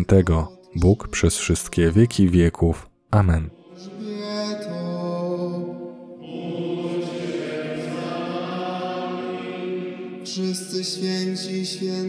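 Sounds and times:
sacred vocal chant: 0:00.0 - 0:02.0, 0:03.5 - 0:12.0.

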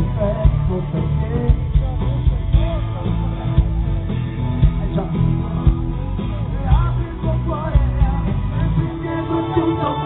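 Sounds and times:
live pop-rock band: 0:00.0 - 0:10.0
person singing: 0:04.8 - 0:10.0.

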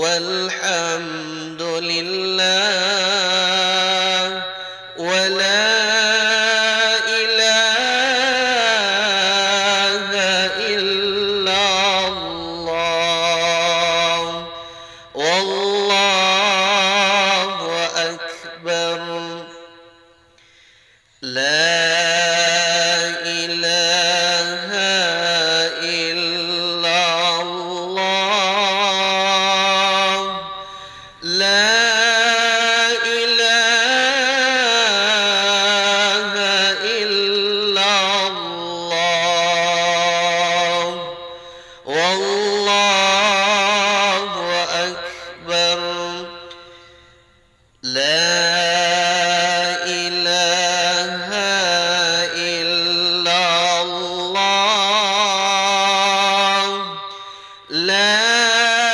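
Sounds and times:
young man chanting: 0:00.0 - 0:58.9.

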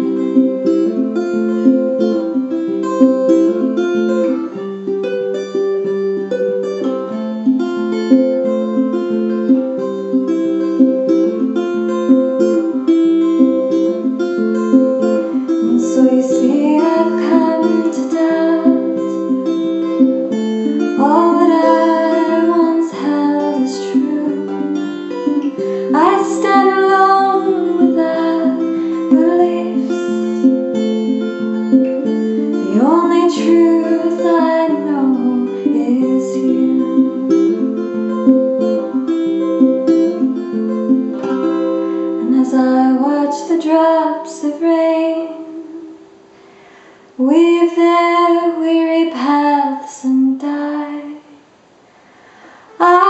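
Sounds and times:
tenor guitar picking single notes: 0:00.0 - 0:49.4
woman singing: 0:15.0 - 0:19.5, 0:20.7 - 0:30.9, 0:31.9 - 0:38.4, 0:42.2 - 0:46.0, 0:47.2 - 0:51.4, 0:52.8 - 0:53.0.

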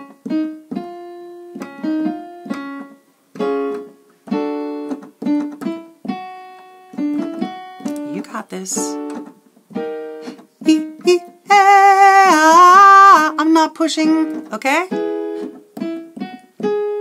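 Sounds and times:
piano playing staccato phrases: 0:00.0 - 0:17.0.

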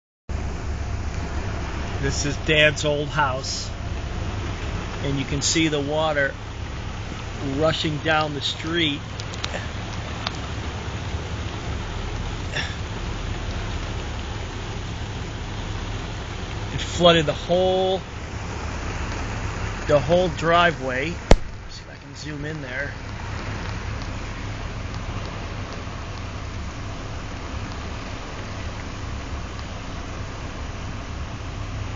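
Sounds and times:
floodwater rushing: 0:00.3 - 0:31.9
low rumble: 0:00.3 - 0:31.9.

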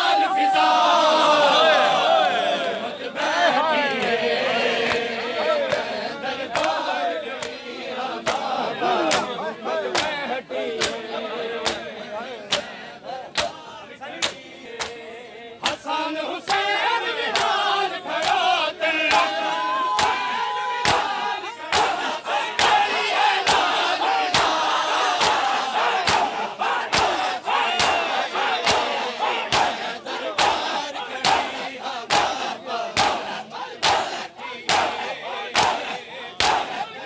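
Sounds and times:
crowd shouting chants: 0:00.0 - 0:37.0
men slapping chests rhythmically: 0:01.7 - 0:37.0.

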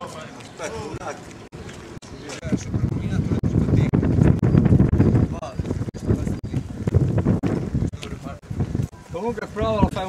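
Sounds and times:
wind buffeting microphone: 0:00.6 - 0:10.0.

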